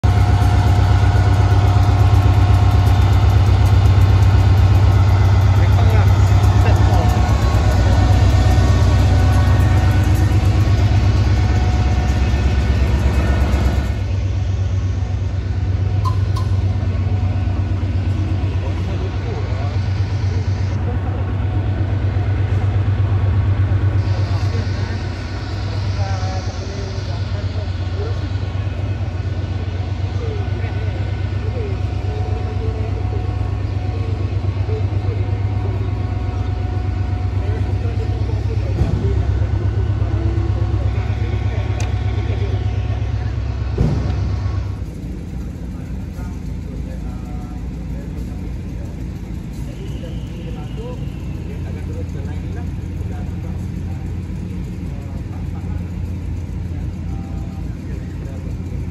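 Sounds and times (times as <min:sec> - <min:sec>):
diesel locomotive engine idling: 0:00.0 - 0:58.9
people's voices in background: 0:00.0 - 0:58.9.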